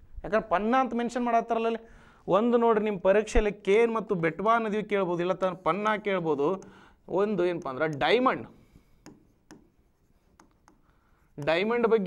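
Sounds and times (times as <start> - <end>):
stylus tapping on display board: 9.0 - 11.6.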